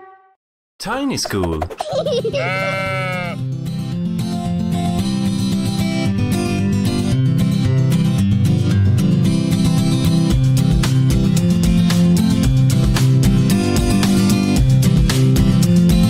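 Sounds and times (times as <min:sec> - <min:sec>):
cartoon sheep bleat: 0:02.3 - 0:03.4.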